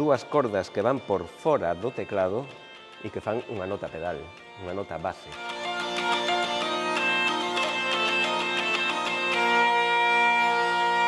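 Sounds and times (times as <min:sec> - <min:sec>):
hurdy-gurdy drone: 0:00.0 - 0:11.0
hurdy-gurdy melody: 0:00.0 - 0:11.0.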